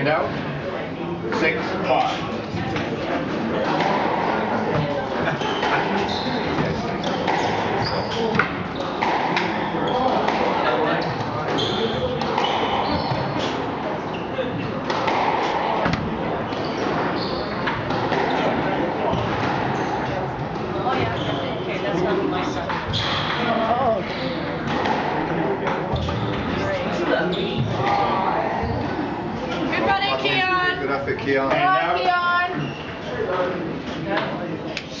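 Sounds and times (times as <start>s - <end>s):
shoes squeaking on wooden floor: 5.2s - 10.4s, 11.0s - 15.2s, 16.5s - 20.0s, 20.6s - 21.8s, 25.9s - 28.0s, 32.0s - 33.2s.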